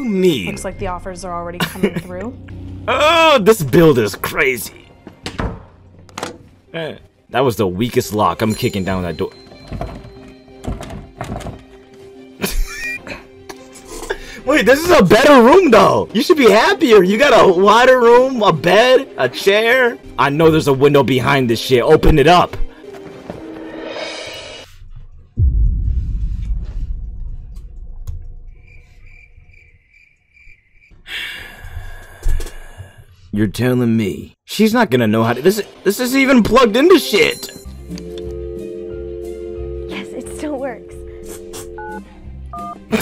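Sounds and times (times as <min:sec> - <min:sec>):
deep boom: 0:25.3 - 0:29.6
high cricket-like chirps: 0:28.4 - 0:31.0
background music drone: 0:37.7 - 0:42.5.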